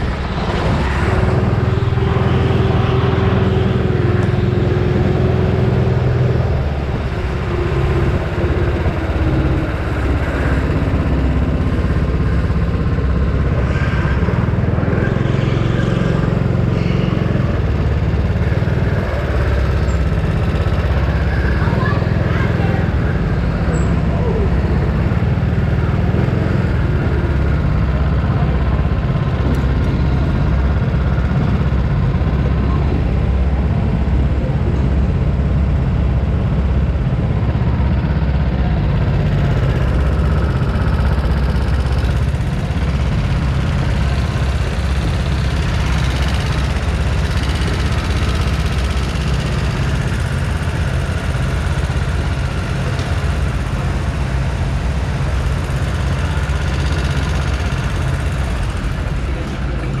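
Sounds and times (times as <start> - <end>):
go-kart engines rumbling: 0.0 - 60.0.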